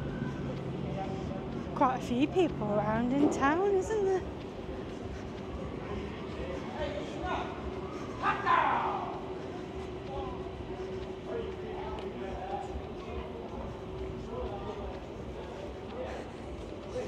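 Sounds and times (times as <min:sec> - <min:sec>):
murmur of voices: 0:00.0 - 0:17.0
steady hum: 0:00.0 - 0:17.0.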